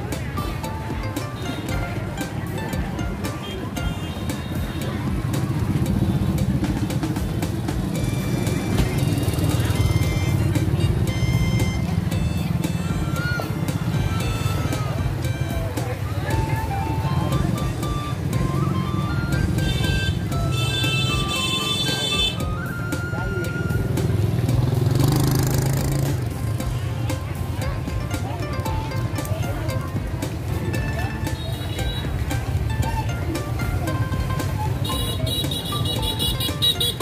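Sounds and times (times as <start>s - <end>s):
motorbike engines running: 0.0s - 37.0s
people chattering: 0.0s - 37.0s.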